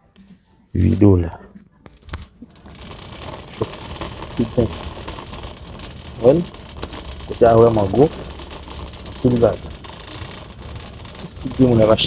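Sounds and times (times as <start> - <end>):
shopping cart rolling rattle: 2.1 - 12.0.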